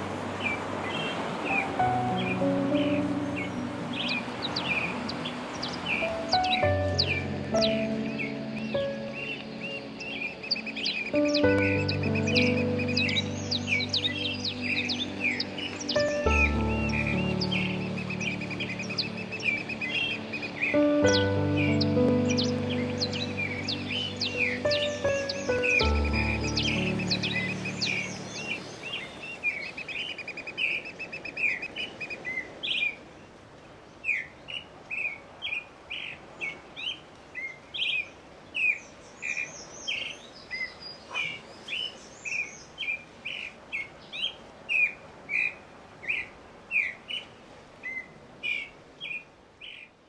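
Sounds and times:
background music: 0.0s - 29.0s
bird call notes: 0.5s - 32.8s
high bird chirps: 1.0s - 30.8s.

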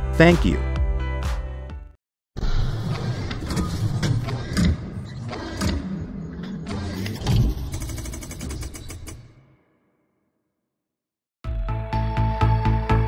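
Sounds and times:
mechanical whirs: 2.4s - 9.6s.

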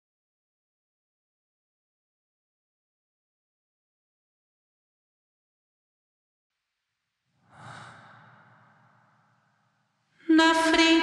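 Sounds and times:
breathy exhale: 7.4s - 9.5s.

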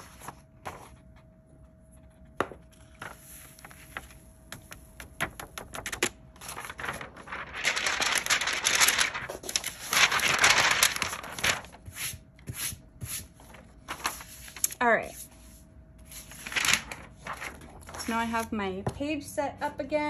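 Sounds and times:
paper rustling and rubbing: 2.8s - 18.5s.

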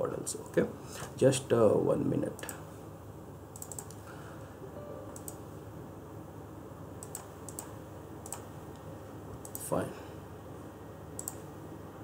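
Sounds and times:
steady low background noise: 0.0s - 12.0s
keyboard and mouse clicks: 3.6s - 4.0s, 5.2s - 5.4s, 7.0s - 8.5s, 9.4s - 9.7s, 11.2s - 11.4s
brief falling-pitch sound: 4.7s - 5.2s.

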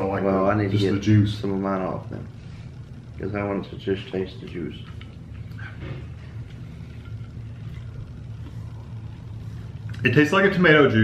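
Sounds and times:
faint scattered small sounds: 0.0s - 11.0s
steady low hum: 0.0s - 11.0s.

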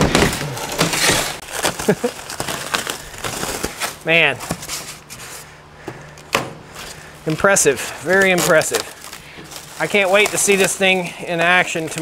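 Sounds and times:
plastic wrap crinkling: 0.0s - 5.5s, 6.2s - 12.0s
styrofoam crunching: 0.0s - 5.5s, 6.8s - 12.0s
person laughing: 1.6s - 2.4s.

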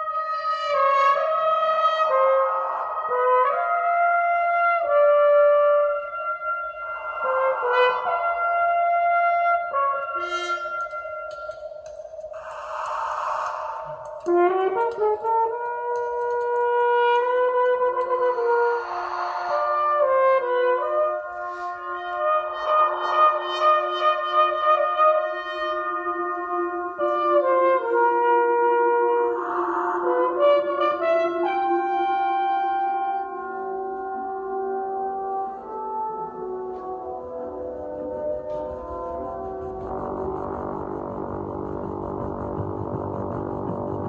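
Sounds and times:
french horn held notes: 0.0s - 44.0s
sustained electronic drone: 2.0s - 25.2s, 26.4s - 33.4s, 35.4s - 44.0s.

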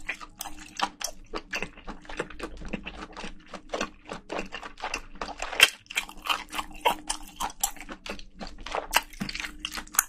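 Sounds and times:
wet crunchy chewing: 0.0s - 10.0s.

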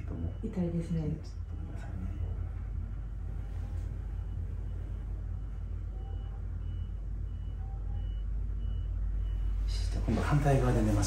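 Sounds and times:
steady low hum: 0.0s - 11.0s
faint high-pitched electronic beep: 3.4s - 9.8s.

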